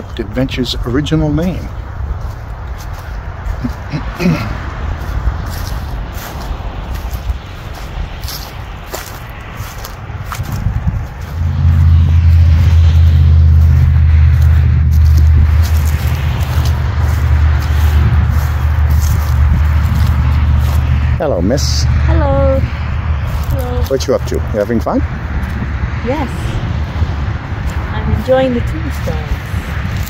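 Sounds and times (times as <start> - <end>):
distant road traffic: 0.0 - 30.0
wind buffeting microphone: 0.0 - 30.0.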